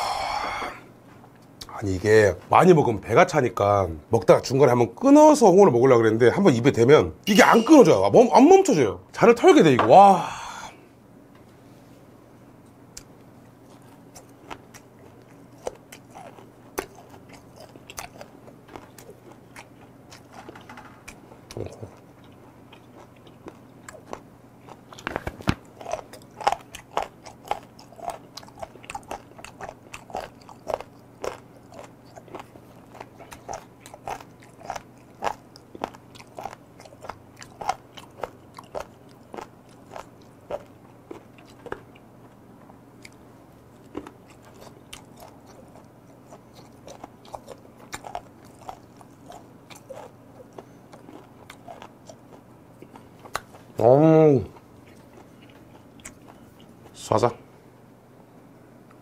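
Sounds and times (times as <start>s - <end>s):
crunchy chewing: 12.9s - 53.8s, 54.5s - 57.1s.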